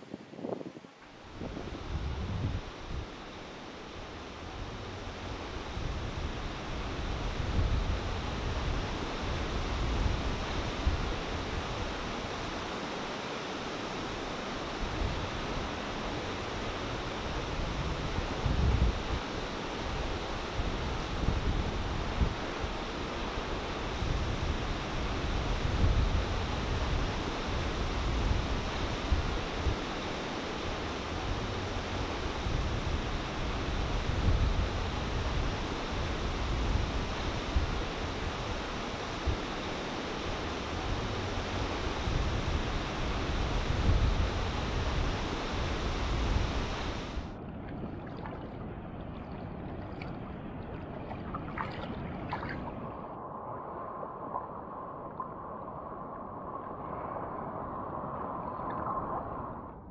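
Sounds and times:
wind buffeting microphone: 14.8 - 30.0, 30.8 - 59.9.

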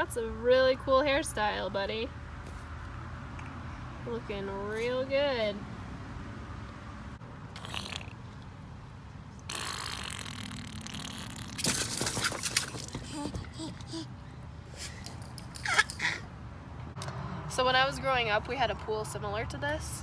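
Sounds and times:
water splashing and sloshing: 11.5 - 14.0
baby squealing: 15.6 - 16.3.

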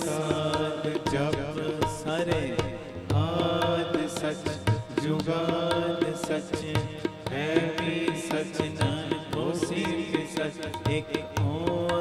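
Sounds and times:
harmonium: 0.0 - 12.0
tabla hand-drum strokes: 0.0 - 12.0.

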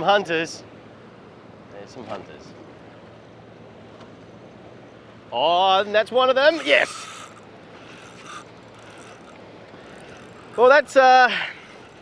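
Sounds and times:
fishing reel winding: 6.4 - 12.0.

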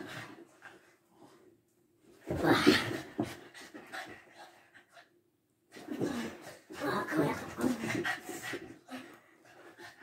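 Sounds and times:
dog panting: 3.2 - 5.2.

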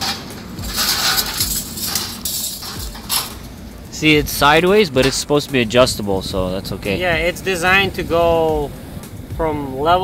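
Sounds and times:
sheet metal scraping and rattling: 0.0 - 5.5.

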